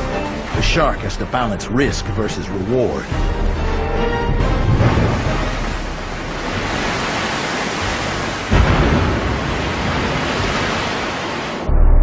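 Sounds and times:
sea water rushing and splashing: 0:00.0 - 0:11.7
sudden low boom: 0:11.7 - 0:12.0.

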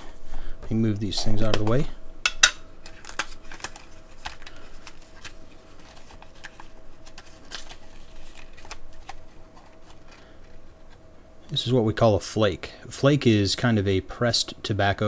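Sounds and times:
paper and tin crinkling: 0:02.8 - 0:10.7.

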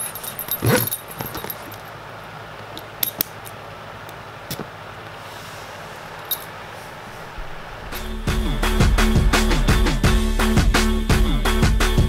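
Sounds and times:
steady background hum: 0:00.0 - 0:11.7.

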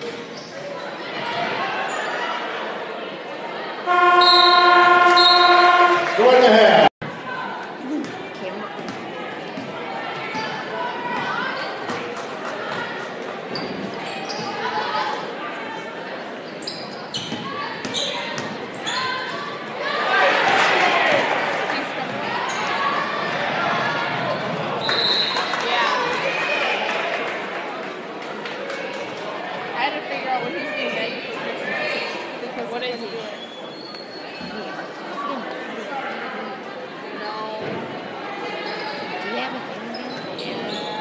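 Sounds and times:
spectators talking: 0:00.0 - 0:41.0.

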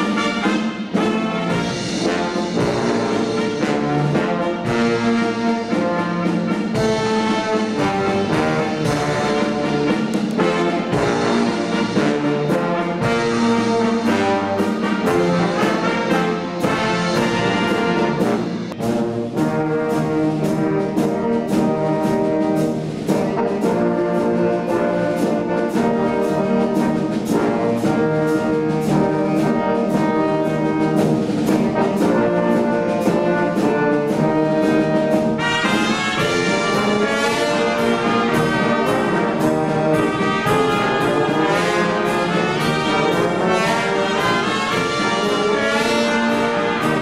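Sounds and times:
brass wind band playing: 0:00.0 - 0:47.0.

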